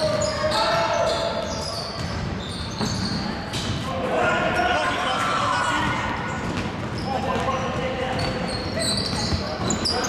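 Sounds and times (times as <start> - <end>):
sneakers squeaking: 0.0 - 3.9, 5.0 - 10.0.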